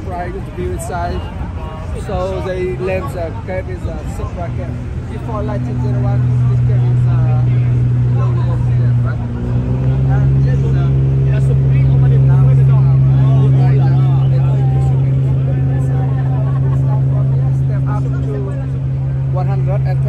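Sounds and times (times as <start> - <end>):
babble of voices: 0.0 - 20.0
boat engine humming: 0.0 - 20.0.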